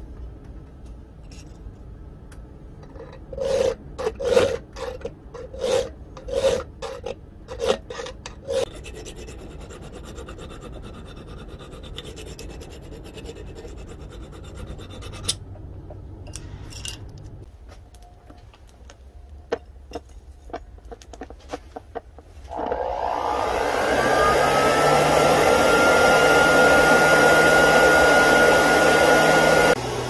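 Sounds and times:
hand file rasping on steel: 0:03.3 - 0:15.4.

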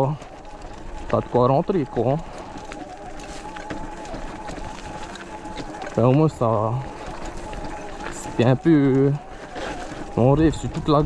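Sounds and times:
electric motor whining: 0:00.0 - 0:11.0.

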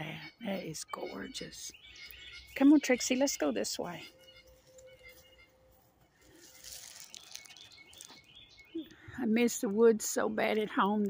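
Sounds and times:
distant birds chirping: 0:00.0 - 0:10.7.

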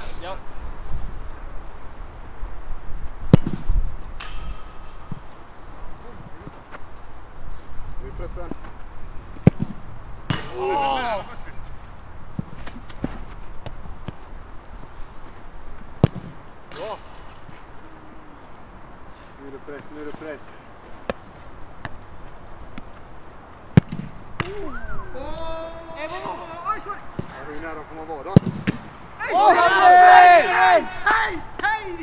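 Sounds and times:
boot kicking football thuds: 0:15.8 - 0:16.4
person shouting: 0:24.5 - 0:26.9, 0:29.2 - 0:32.0.

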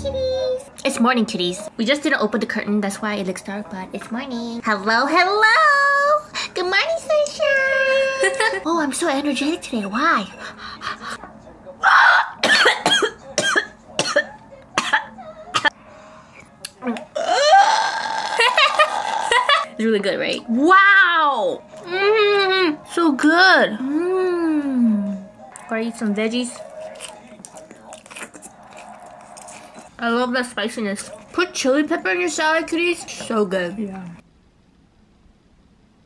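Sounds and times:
woman coughing: 0:12.4 - 0:15.8
people chewing salad: 0:25.4 - 0:30.0.

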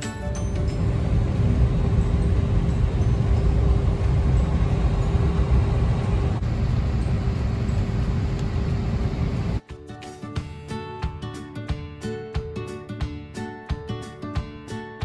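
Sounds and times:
constant hum: 0:00.4 - 0:09.6
airliner cabin rumble: 0:00.5 - 0:09.6.

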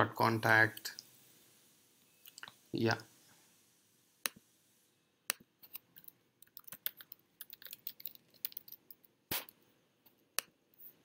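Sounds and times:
typing on a computer keyboard: 0:06.0 - 0:08.9.

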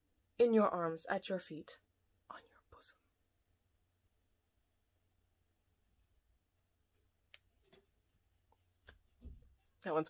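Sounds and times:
woman whispering: 0:02.3 - 0:03.1.

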